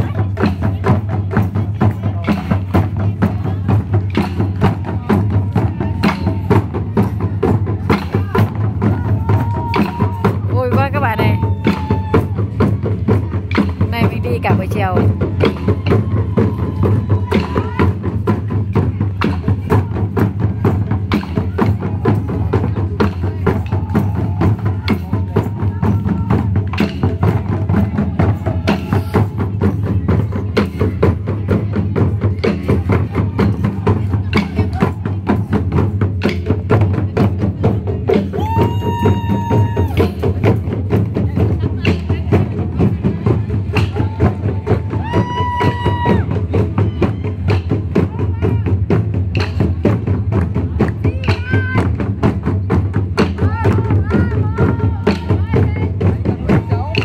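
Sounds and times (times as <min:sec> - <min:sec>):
barrel drums beating fast: 0:00.0 - 0:57.0.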